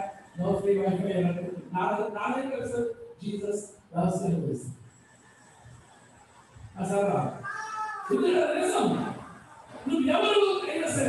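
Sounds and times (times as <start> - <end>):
man's voice through microphone: 0.0 - 4.9, 6.7 - 7.5, 8.1 - 11.0.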